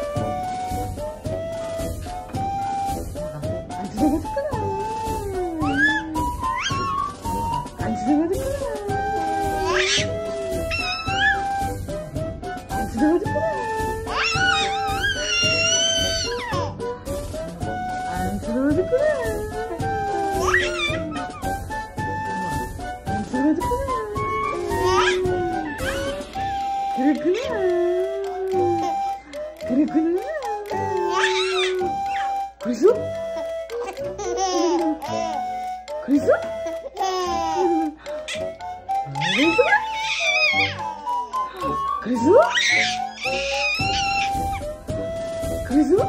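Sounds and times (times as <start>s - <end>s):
background music with held notes: 0.0s - 46.0s
baby cooing and squealing: 5.6s - 7.2s, 8.9s - 11.6s, 14.1s - 16.8s, 20.3s - 21.5s, 24.1s - 26.5s, 30.6s - 32.5s, 33.8s - 35.5s, 36.6s - 41.0s, 42.4s - 44.7s.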